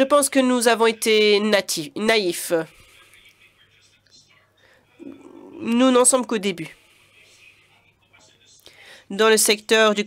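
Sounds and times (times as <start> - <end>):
faint breathy voice: 2.6 - 5.8.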